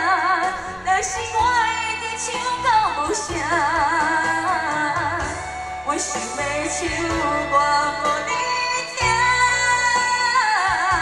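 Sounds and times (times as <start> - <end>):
amplified backing music: 0.0 - 11.0
woman singing with vibrato: 0.0 - 11.0.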